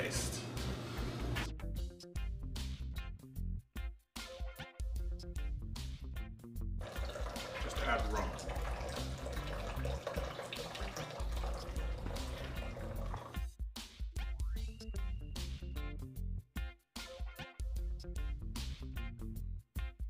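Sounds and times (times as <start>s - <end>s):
background music: 0.0s - 20.0s
liquid pouring and splashing: 6.8s - 13.4s.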